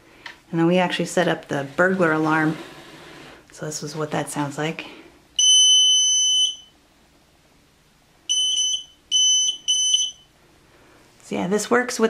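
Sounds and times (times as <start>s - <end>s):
electronic buzzer beeping: 5.4s - 6.7s, 8.3s - 10.2s.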